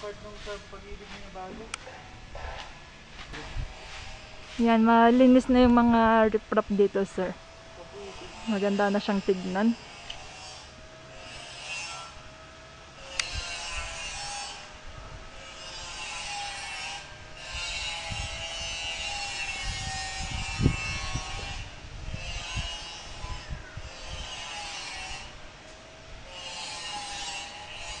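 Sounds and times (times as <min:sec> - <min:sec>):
hand saw cutting wood: 0:08.0 - 0:12.2, 0:13.0 - 0:14.7, 0:15.4 - 0:25.4, 0:26.2 - 0:28.0.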